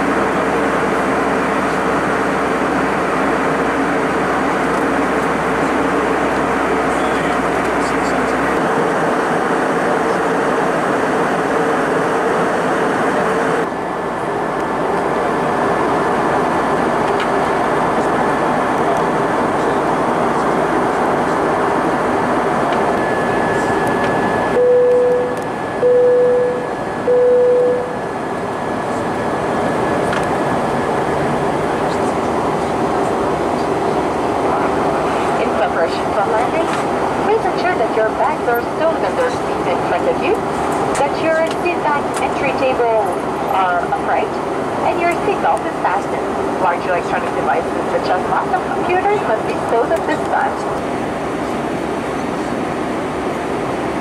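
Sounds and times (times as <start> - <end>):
airplane cabin air rush: 0.0 - 54.0
jet engines humming: 0.0 - 54.0
short steady tones: 24.1 - 28.1.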